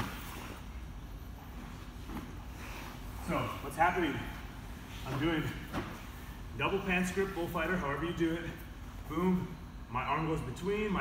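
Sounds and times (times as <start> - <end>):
fabric rustling on mats: 0.0 - 6.4
low room hum: 0.0 - 11.0.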